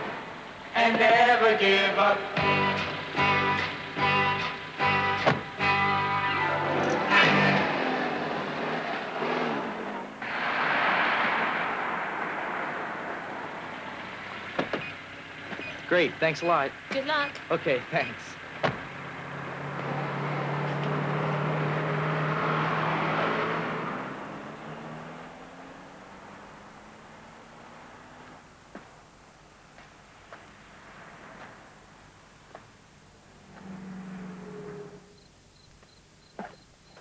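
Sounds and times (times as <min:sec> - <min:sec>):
car driving past: 0:02.0 - 0:16.4, 0:18.7 - 0:29.0, 0:30.0 - 0:35.3
guitar music: 0:02.4 - 0:07.8.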